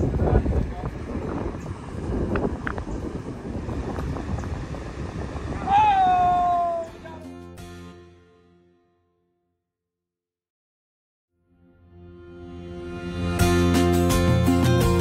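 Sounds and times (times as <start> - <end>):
wind buffeting microphone: 0.0 - 7.2
high-pitched shout: 5.6 - 7.3
held music chord: 11.4 - 15.0.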